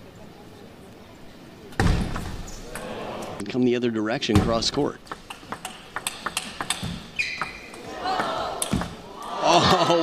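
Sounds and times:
table tennis ball clicking: 5.0s - 9.0s.

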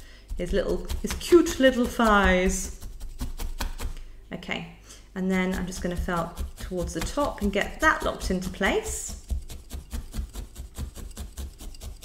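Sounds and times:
felting needle stabbing wool: 0.0s - 4.1s, 5.3s - 12.0s.

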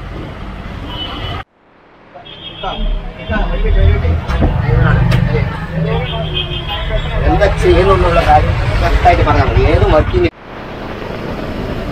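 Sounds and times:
road noise: 0.0s - 11.9s
people talking: 2.2s - 10.3s
bus engine rumble: 2.8s - 11.9s.

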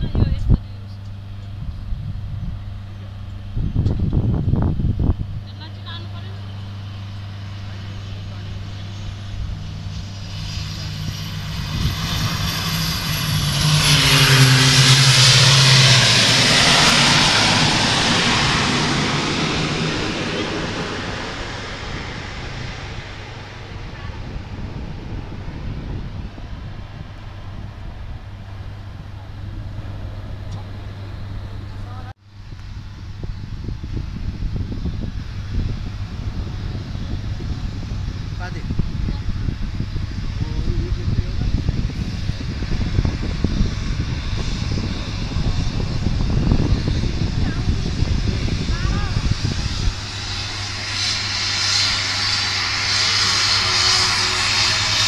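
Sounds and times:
steady low hum: 0.0s - 55.0s
turboprop plane propeller drone: 0.0s - 55.0s.

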